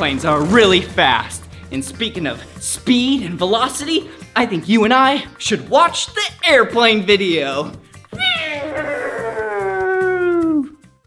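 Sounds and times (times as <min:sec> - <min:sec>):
faint background music: 0:00.0 - 0:11.0
man's long drawn-out call: 0:08.5 - 0:10.7.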